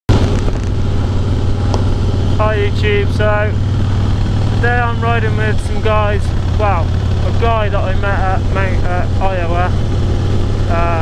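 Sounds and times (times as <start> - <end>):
motorcycle engine running: 0.1 - 11.0
road and wind noise: 0.1 - 11.0.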